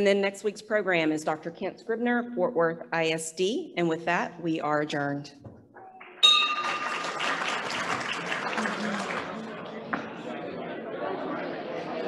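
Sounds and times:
audience applauding: 0:06.0 - 0:09.8.

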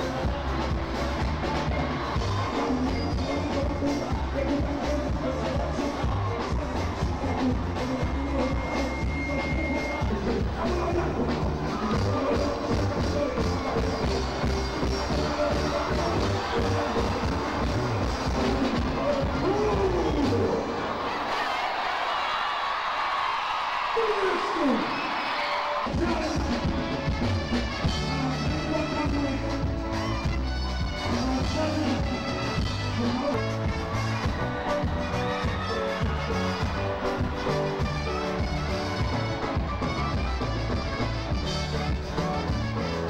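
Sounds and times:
lead vocalist singing: 0:00.0 - 0:20.8
live band music: 0:00.0 - 0:21.9, 0:24.0 - 0:43.0
crowd cheering: 0:00.0 - 0:43.0.

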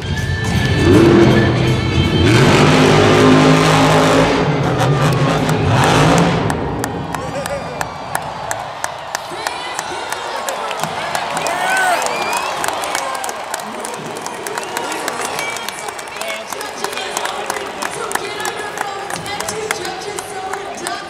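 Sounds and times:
crowd noise: 0:00.0 - 0:21.0
monster truck engine revving: 0:00.1 - 0:08.2
crowd shouting: 0:05.0 - 0:21.0
people clapping: 0:05.0 - 0:21.0.

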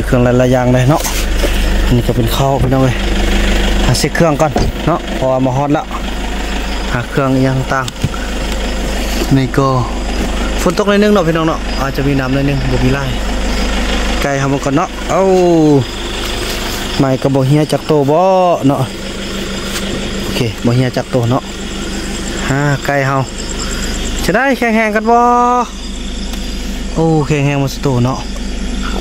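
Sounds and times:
man speaking: 0:00.0 - 0:06.1, 0:06.7 - 0:08.4, 0:09.2 - 0:13.4, 0:14.1 - 0:16.0, 0:16.7 - 0:19.0, 0:20.2 - 0:21.6, 0:22.3 - 0:25.8, 0:26.9 - 0:28.3
cricket chirping: 0:00.0 - 0:29.0
vehicle engine droning: 0:00.0 - 0:29.0.

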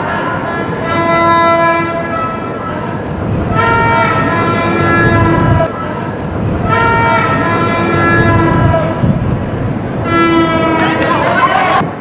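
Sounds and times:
horns blasting: 0:00.0 - 0:11.9
steady low rumble: 0:02.4 - 0:10.8.

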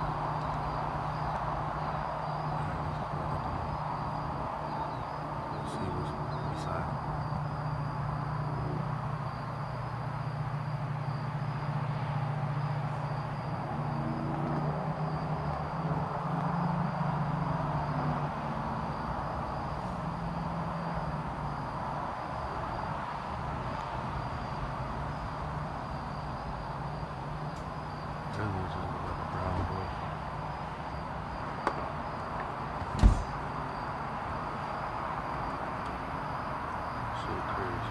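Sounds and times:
high insect trill: 0:00.0 - 0:37.9
low mechanical hum: 0:00.0 - 0:37.9.

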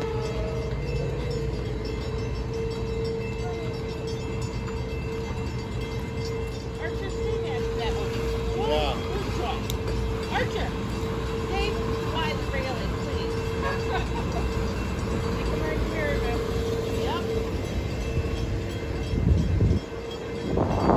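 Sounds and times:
boat engines rumbling: 0:00.0 - 0:20.9.

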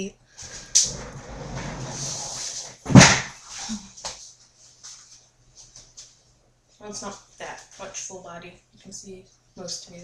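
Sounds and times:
rustling and shuffling: 0:00.4 - 0:08.2
loud thump: 0:02.8 - 0:03.4.

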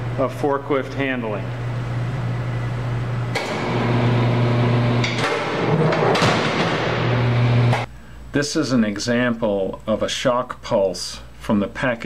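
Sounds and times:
machine hum: 0:00.0 - 0:08.3.

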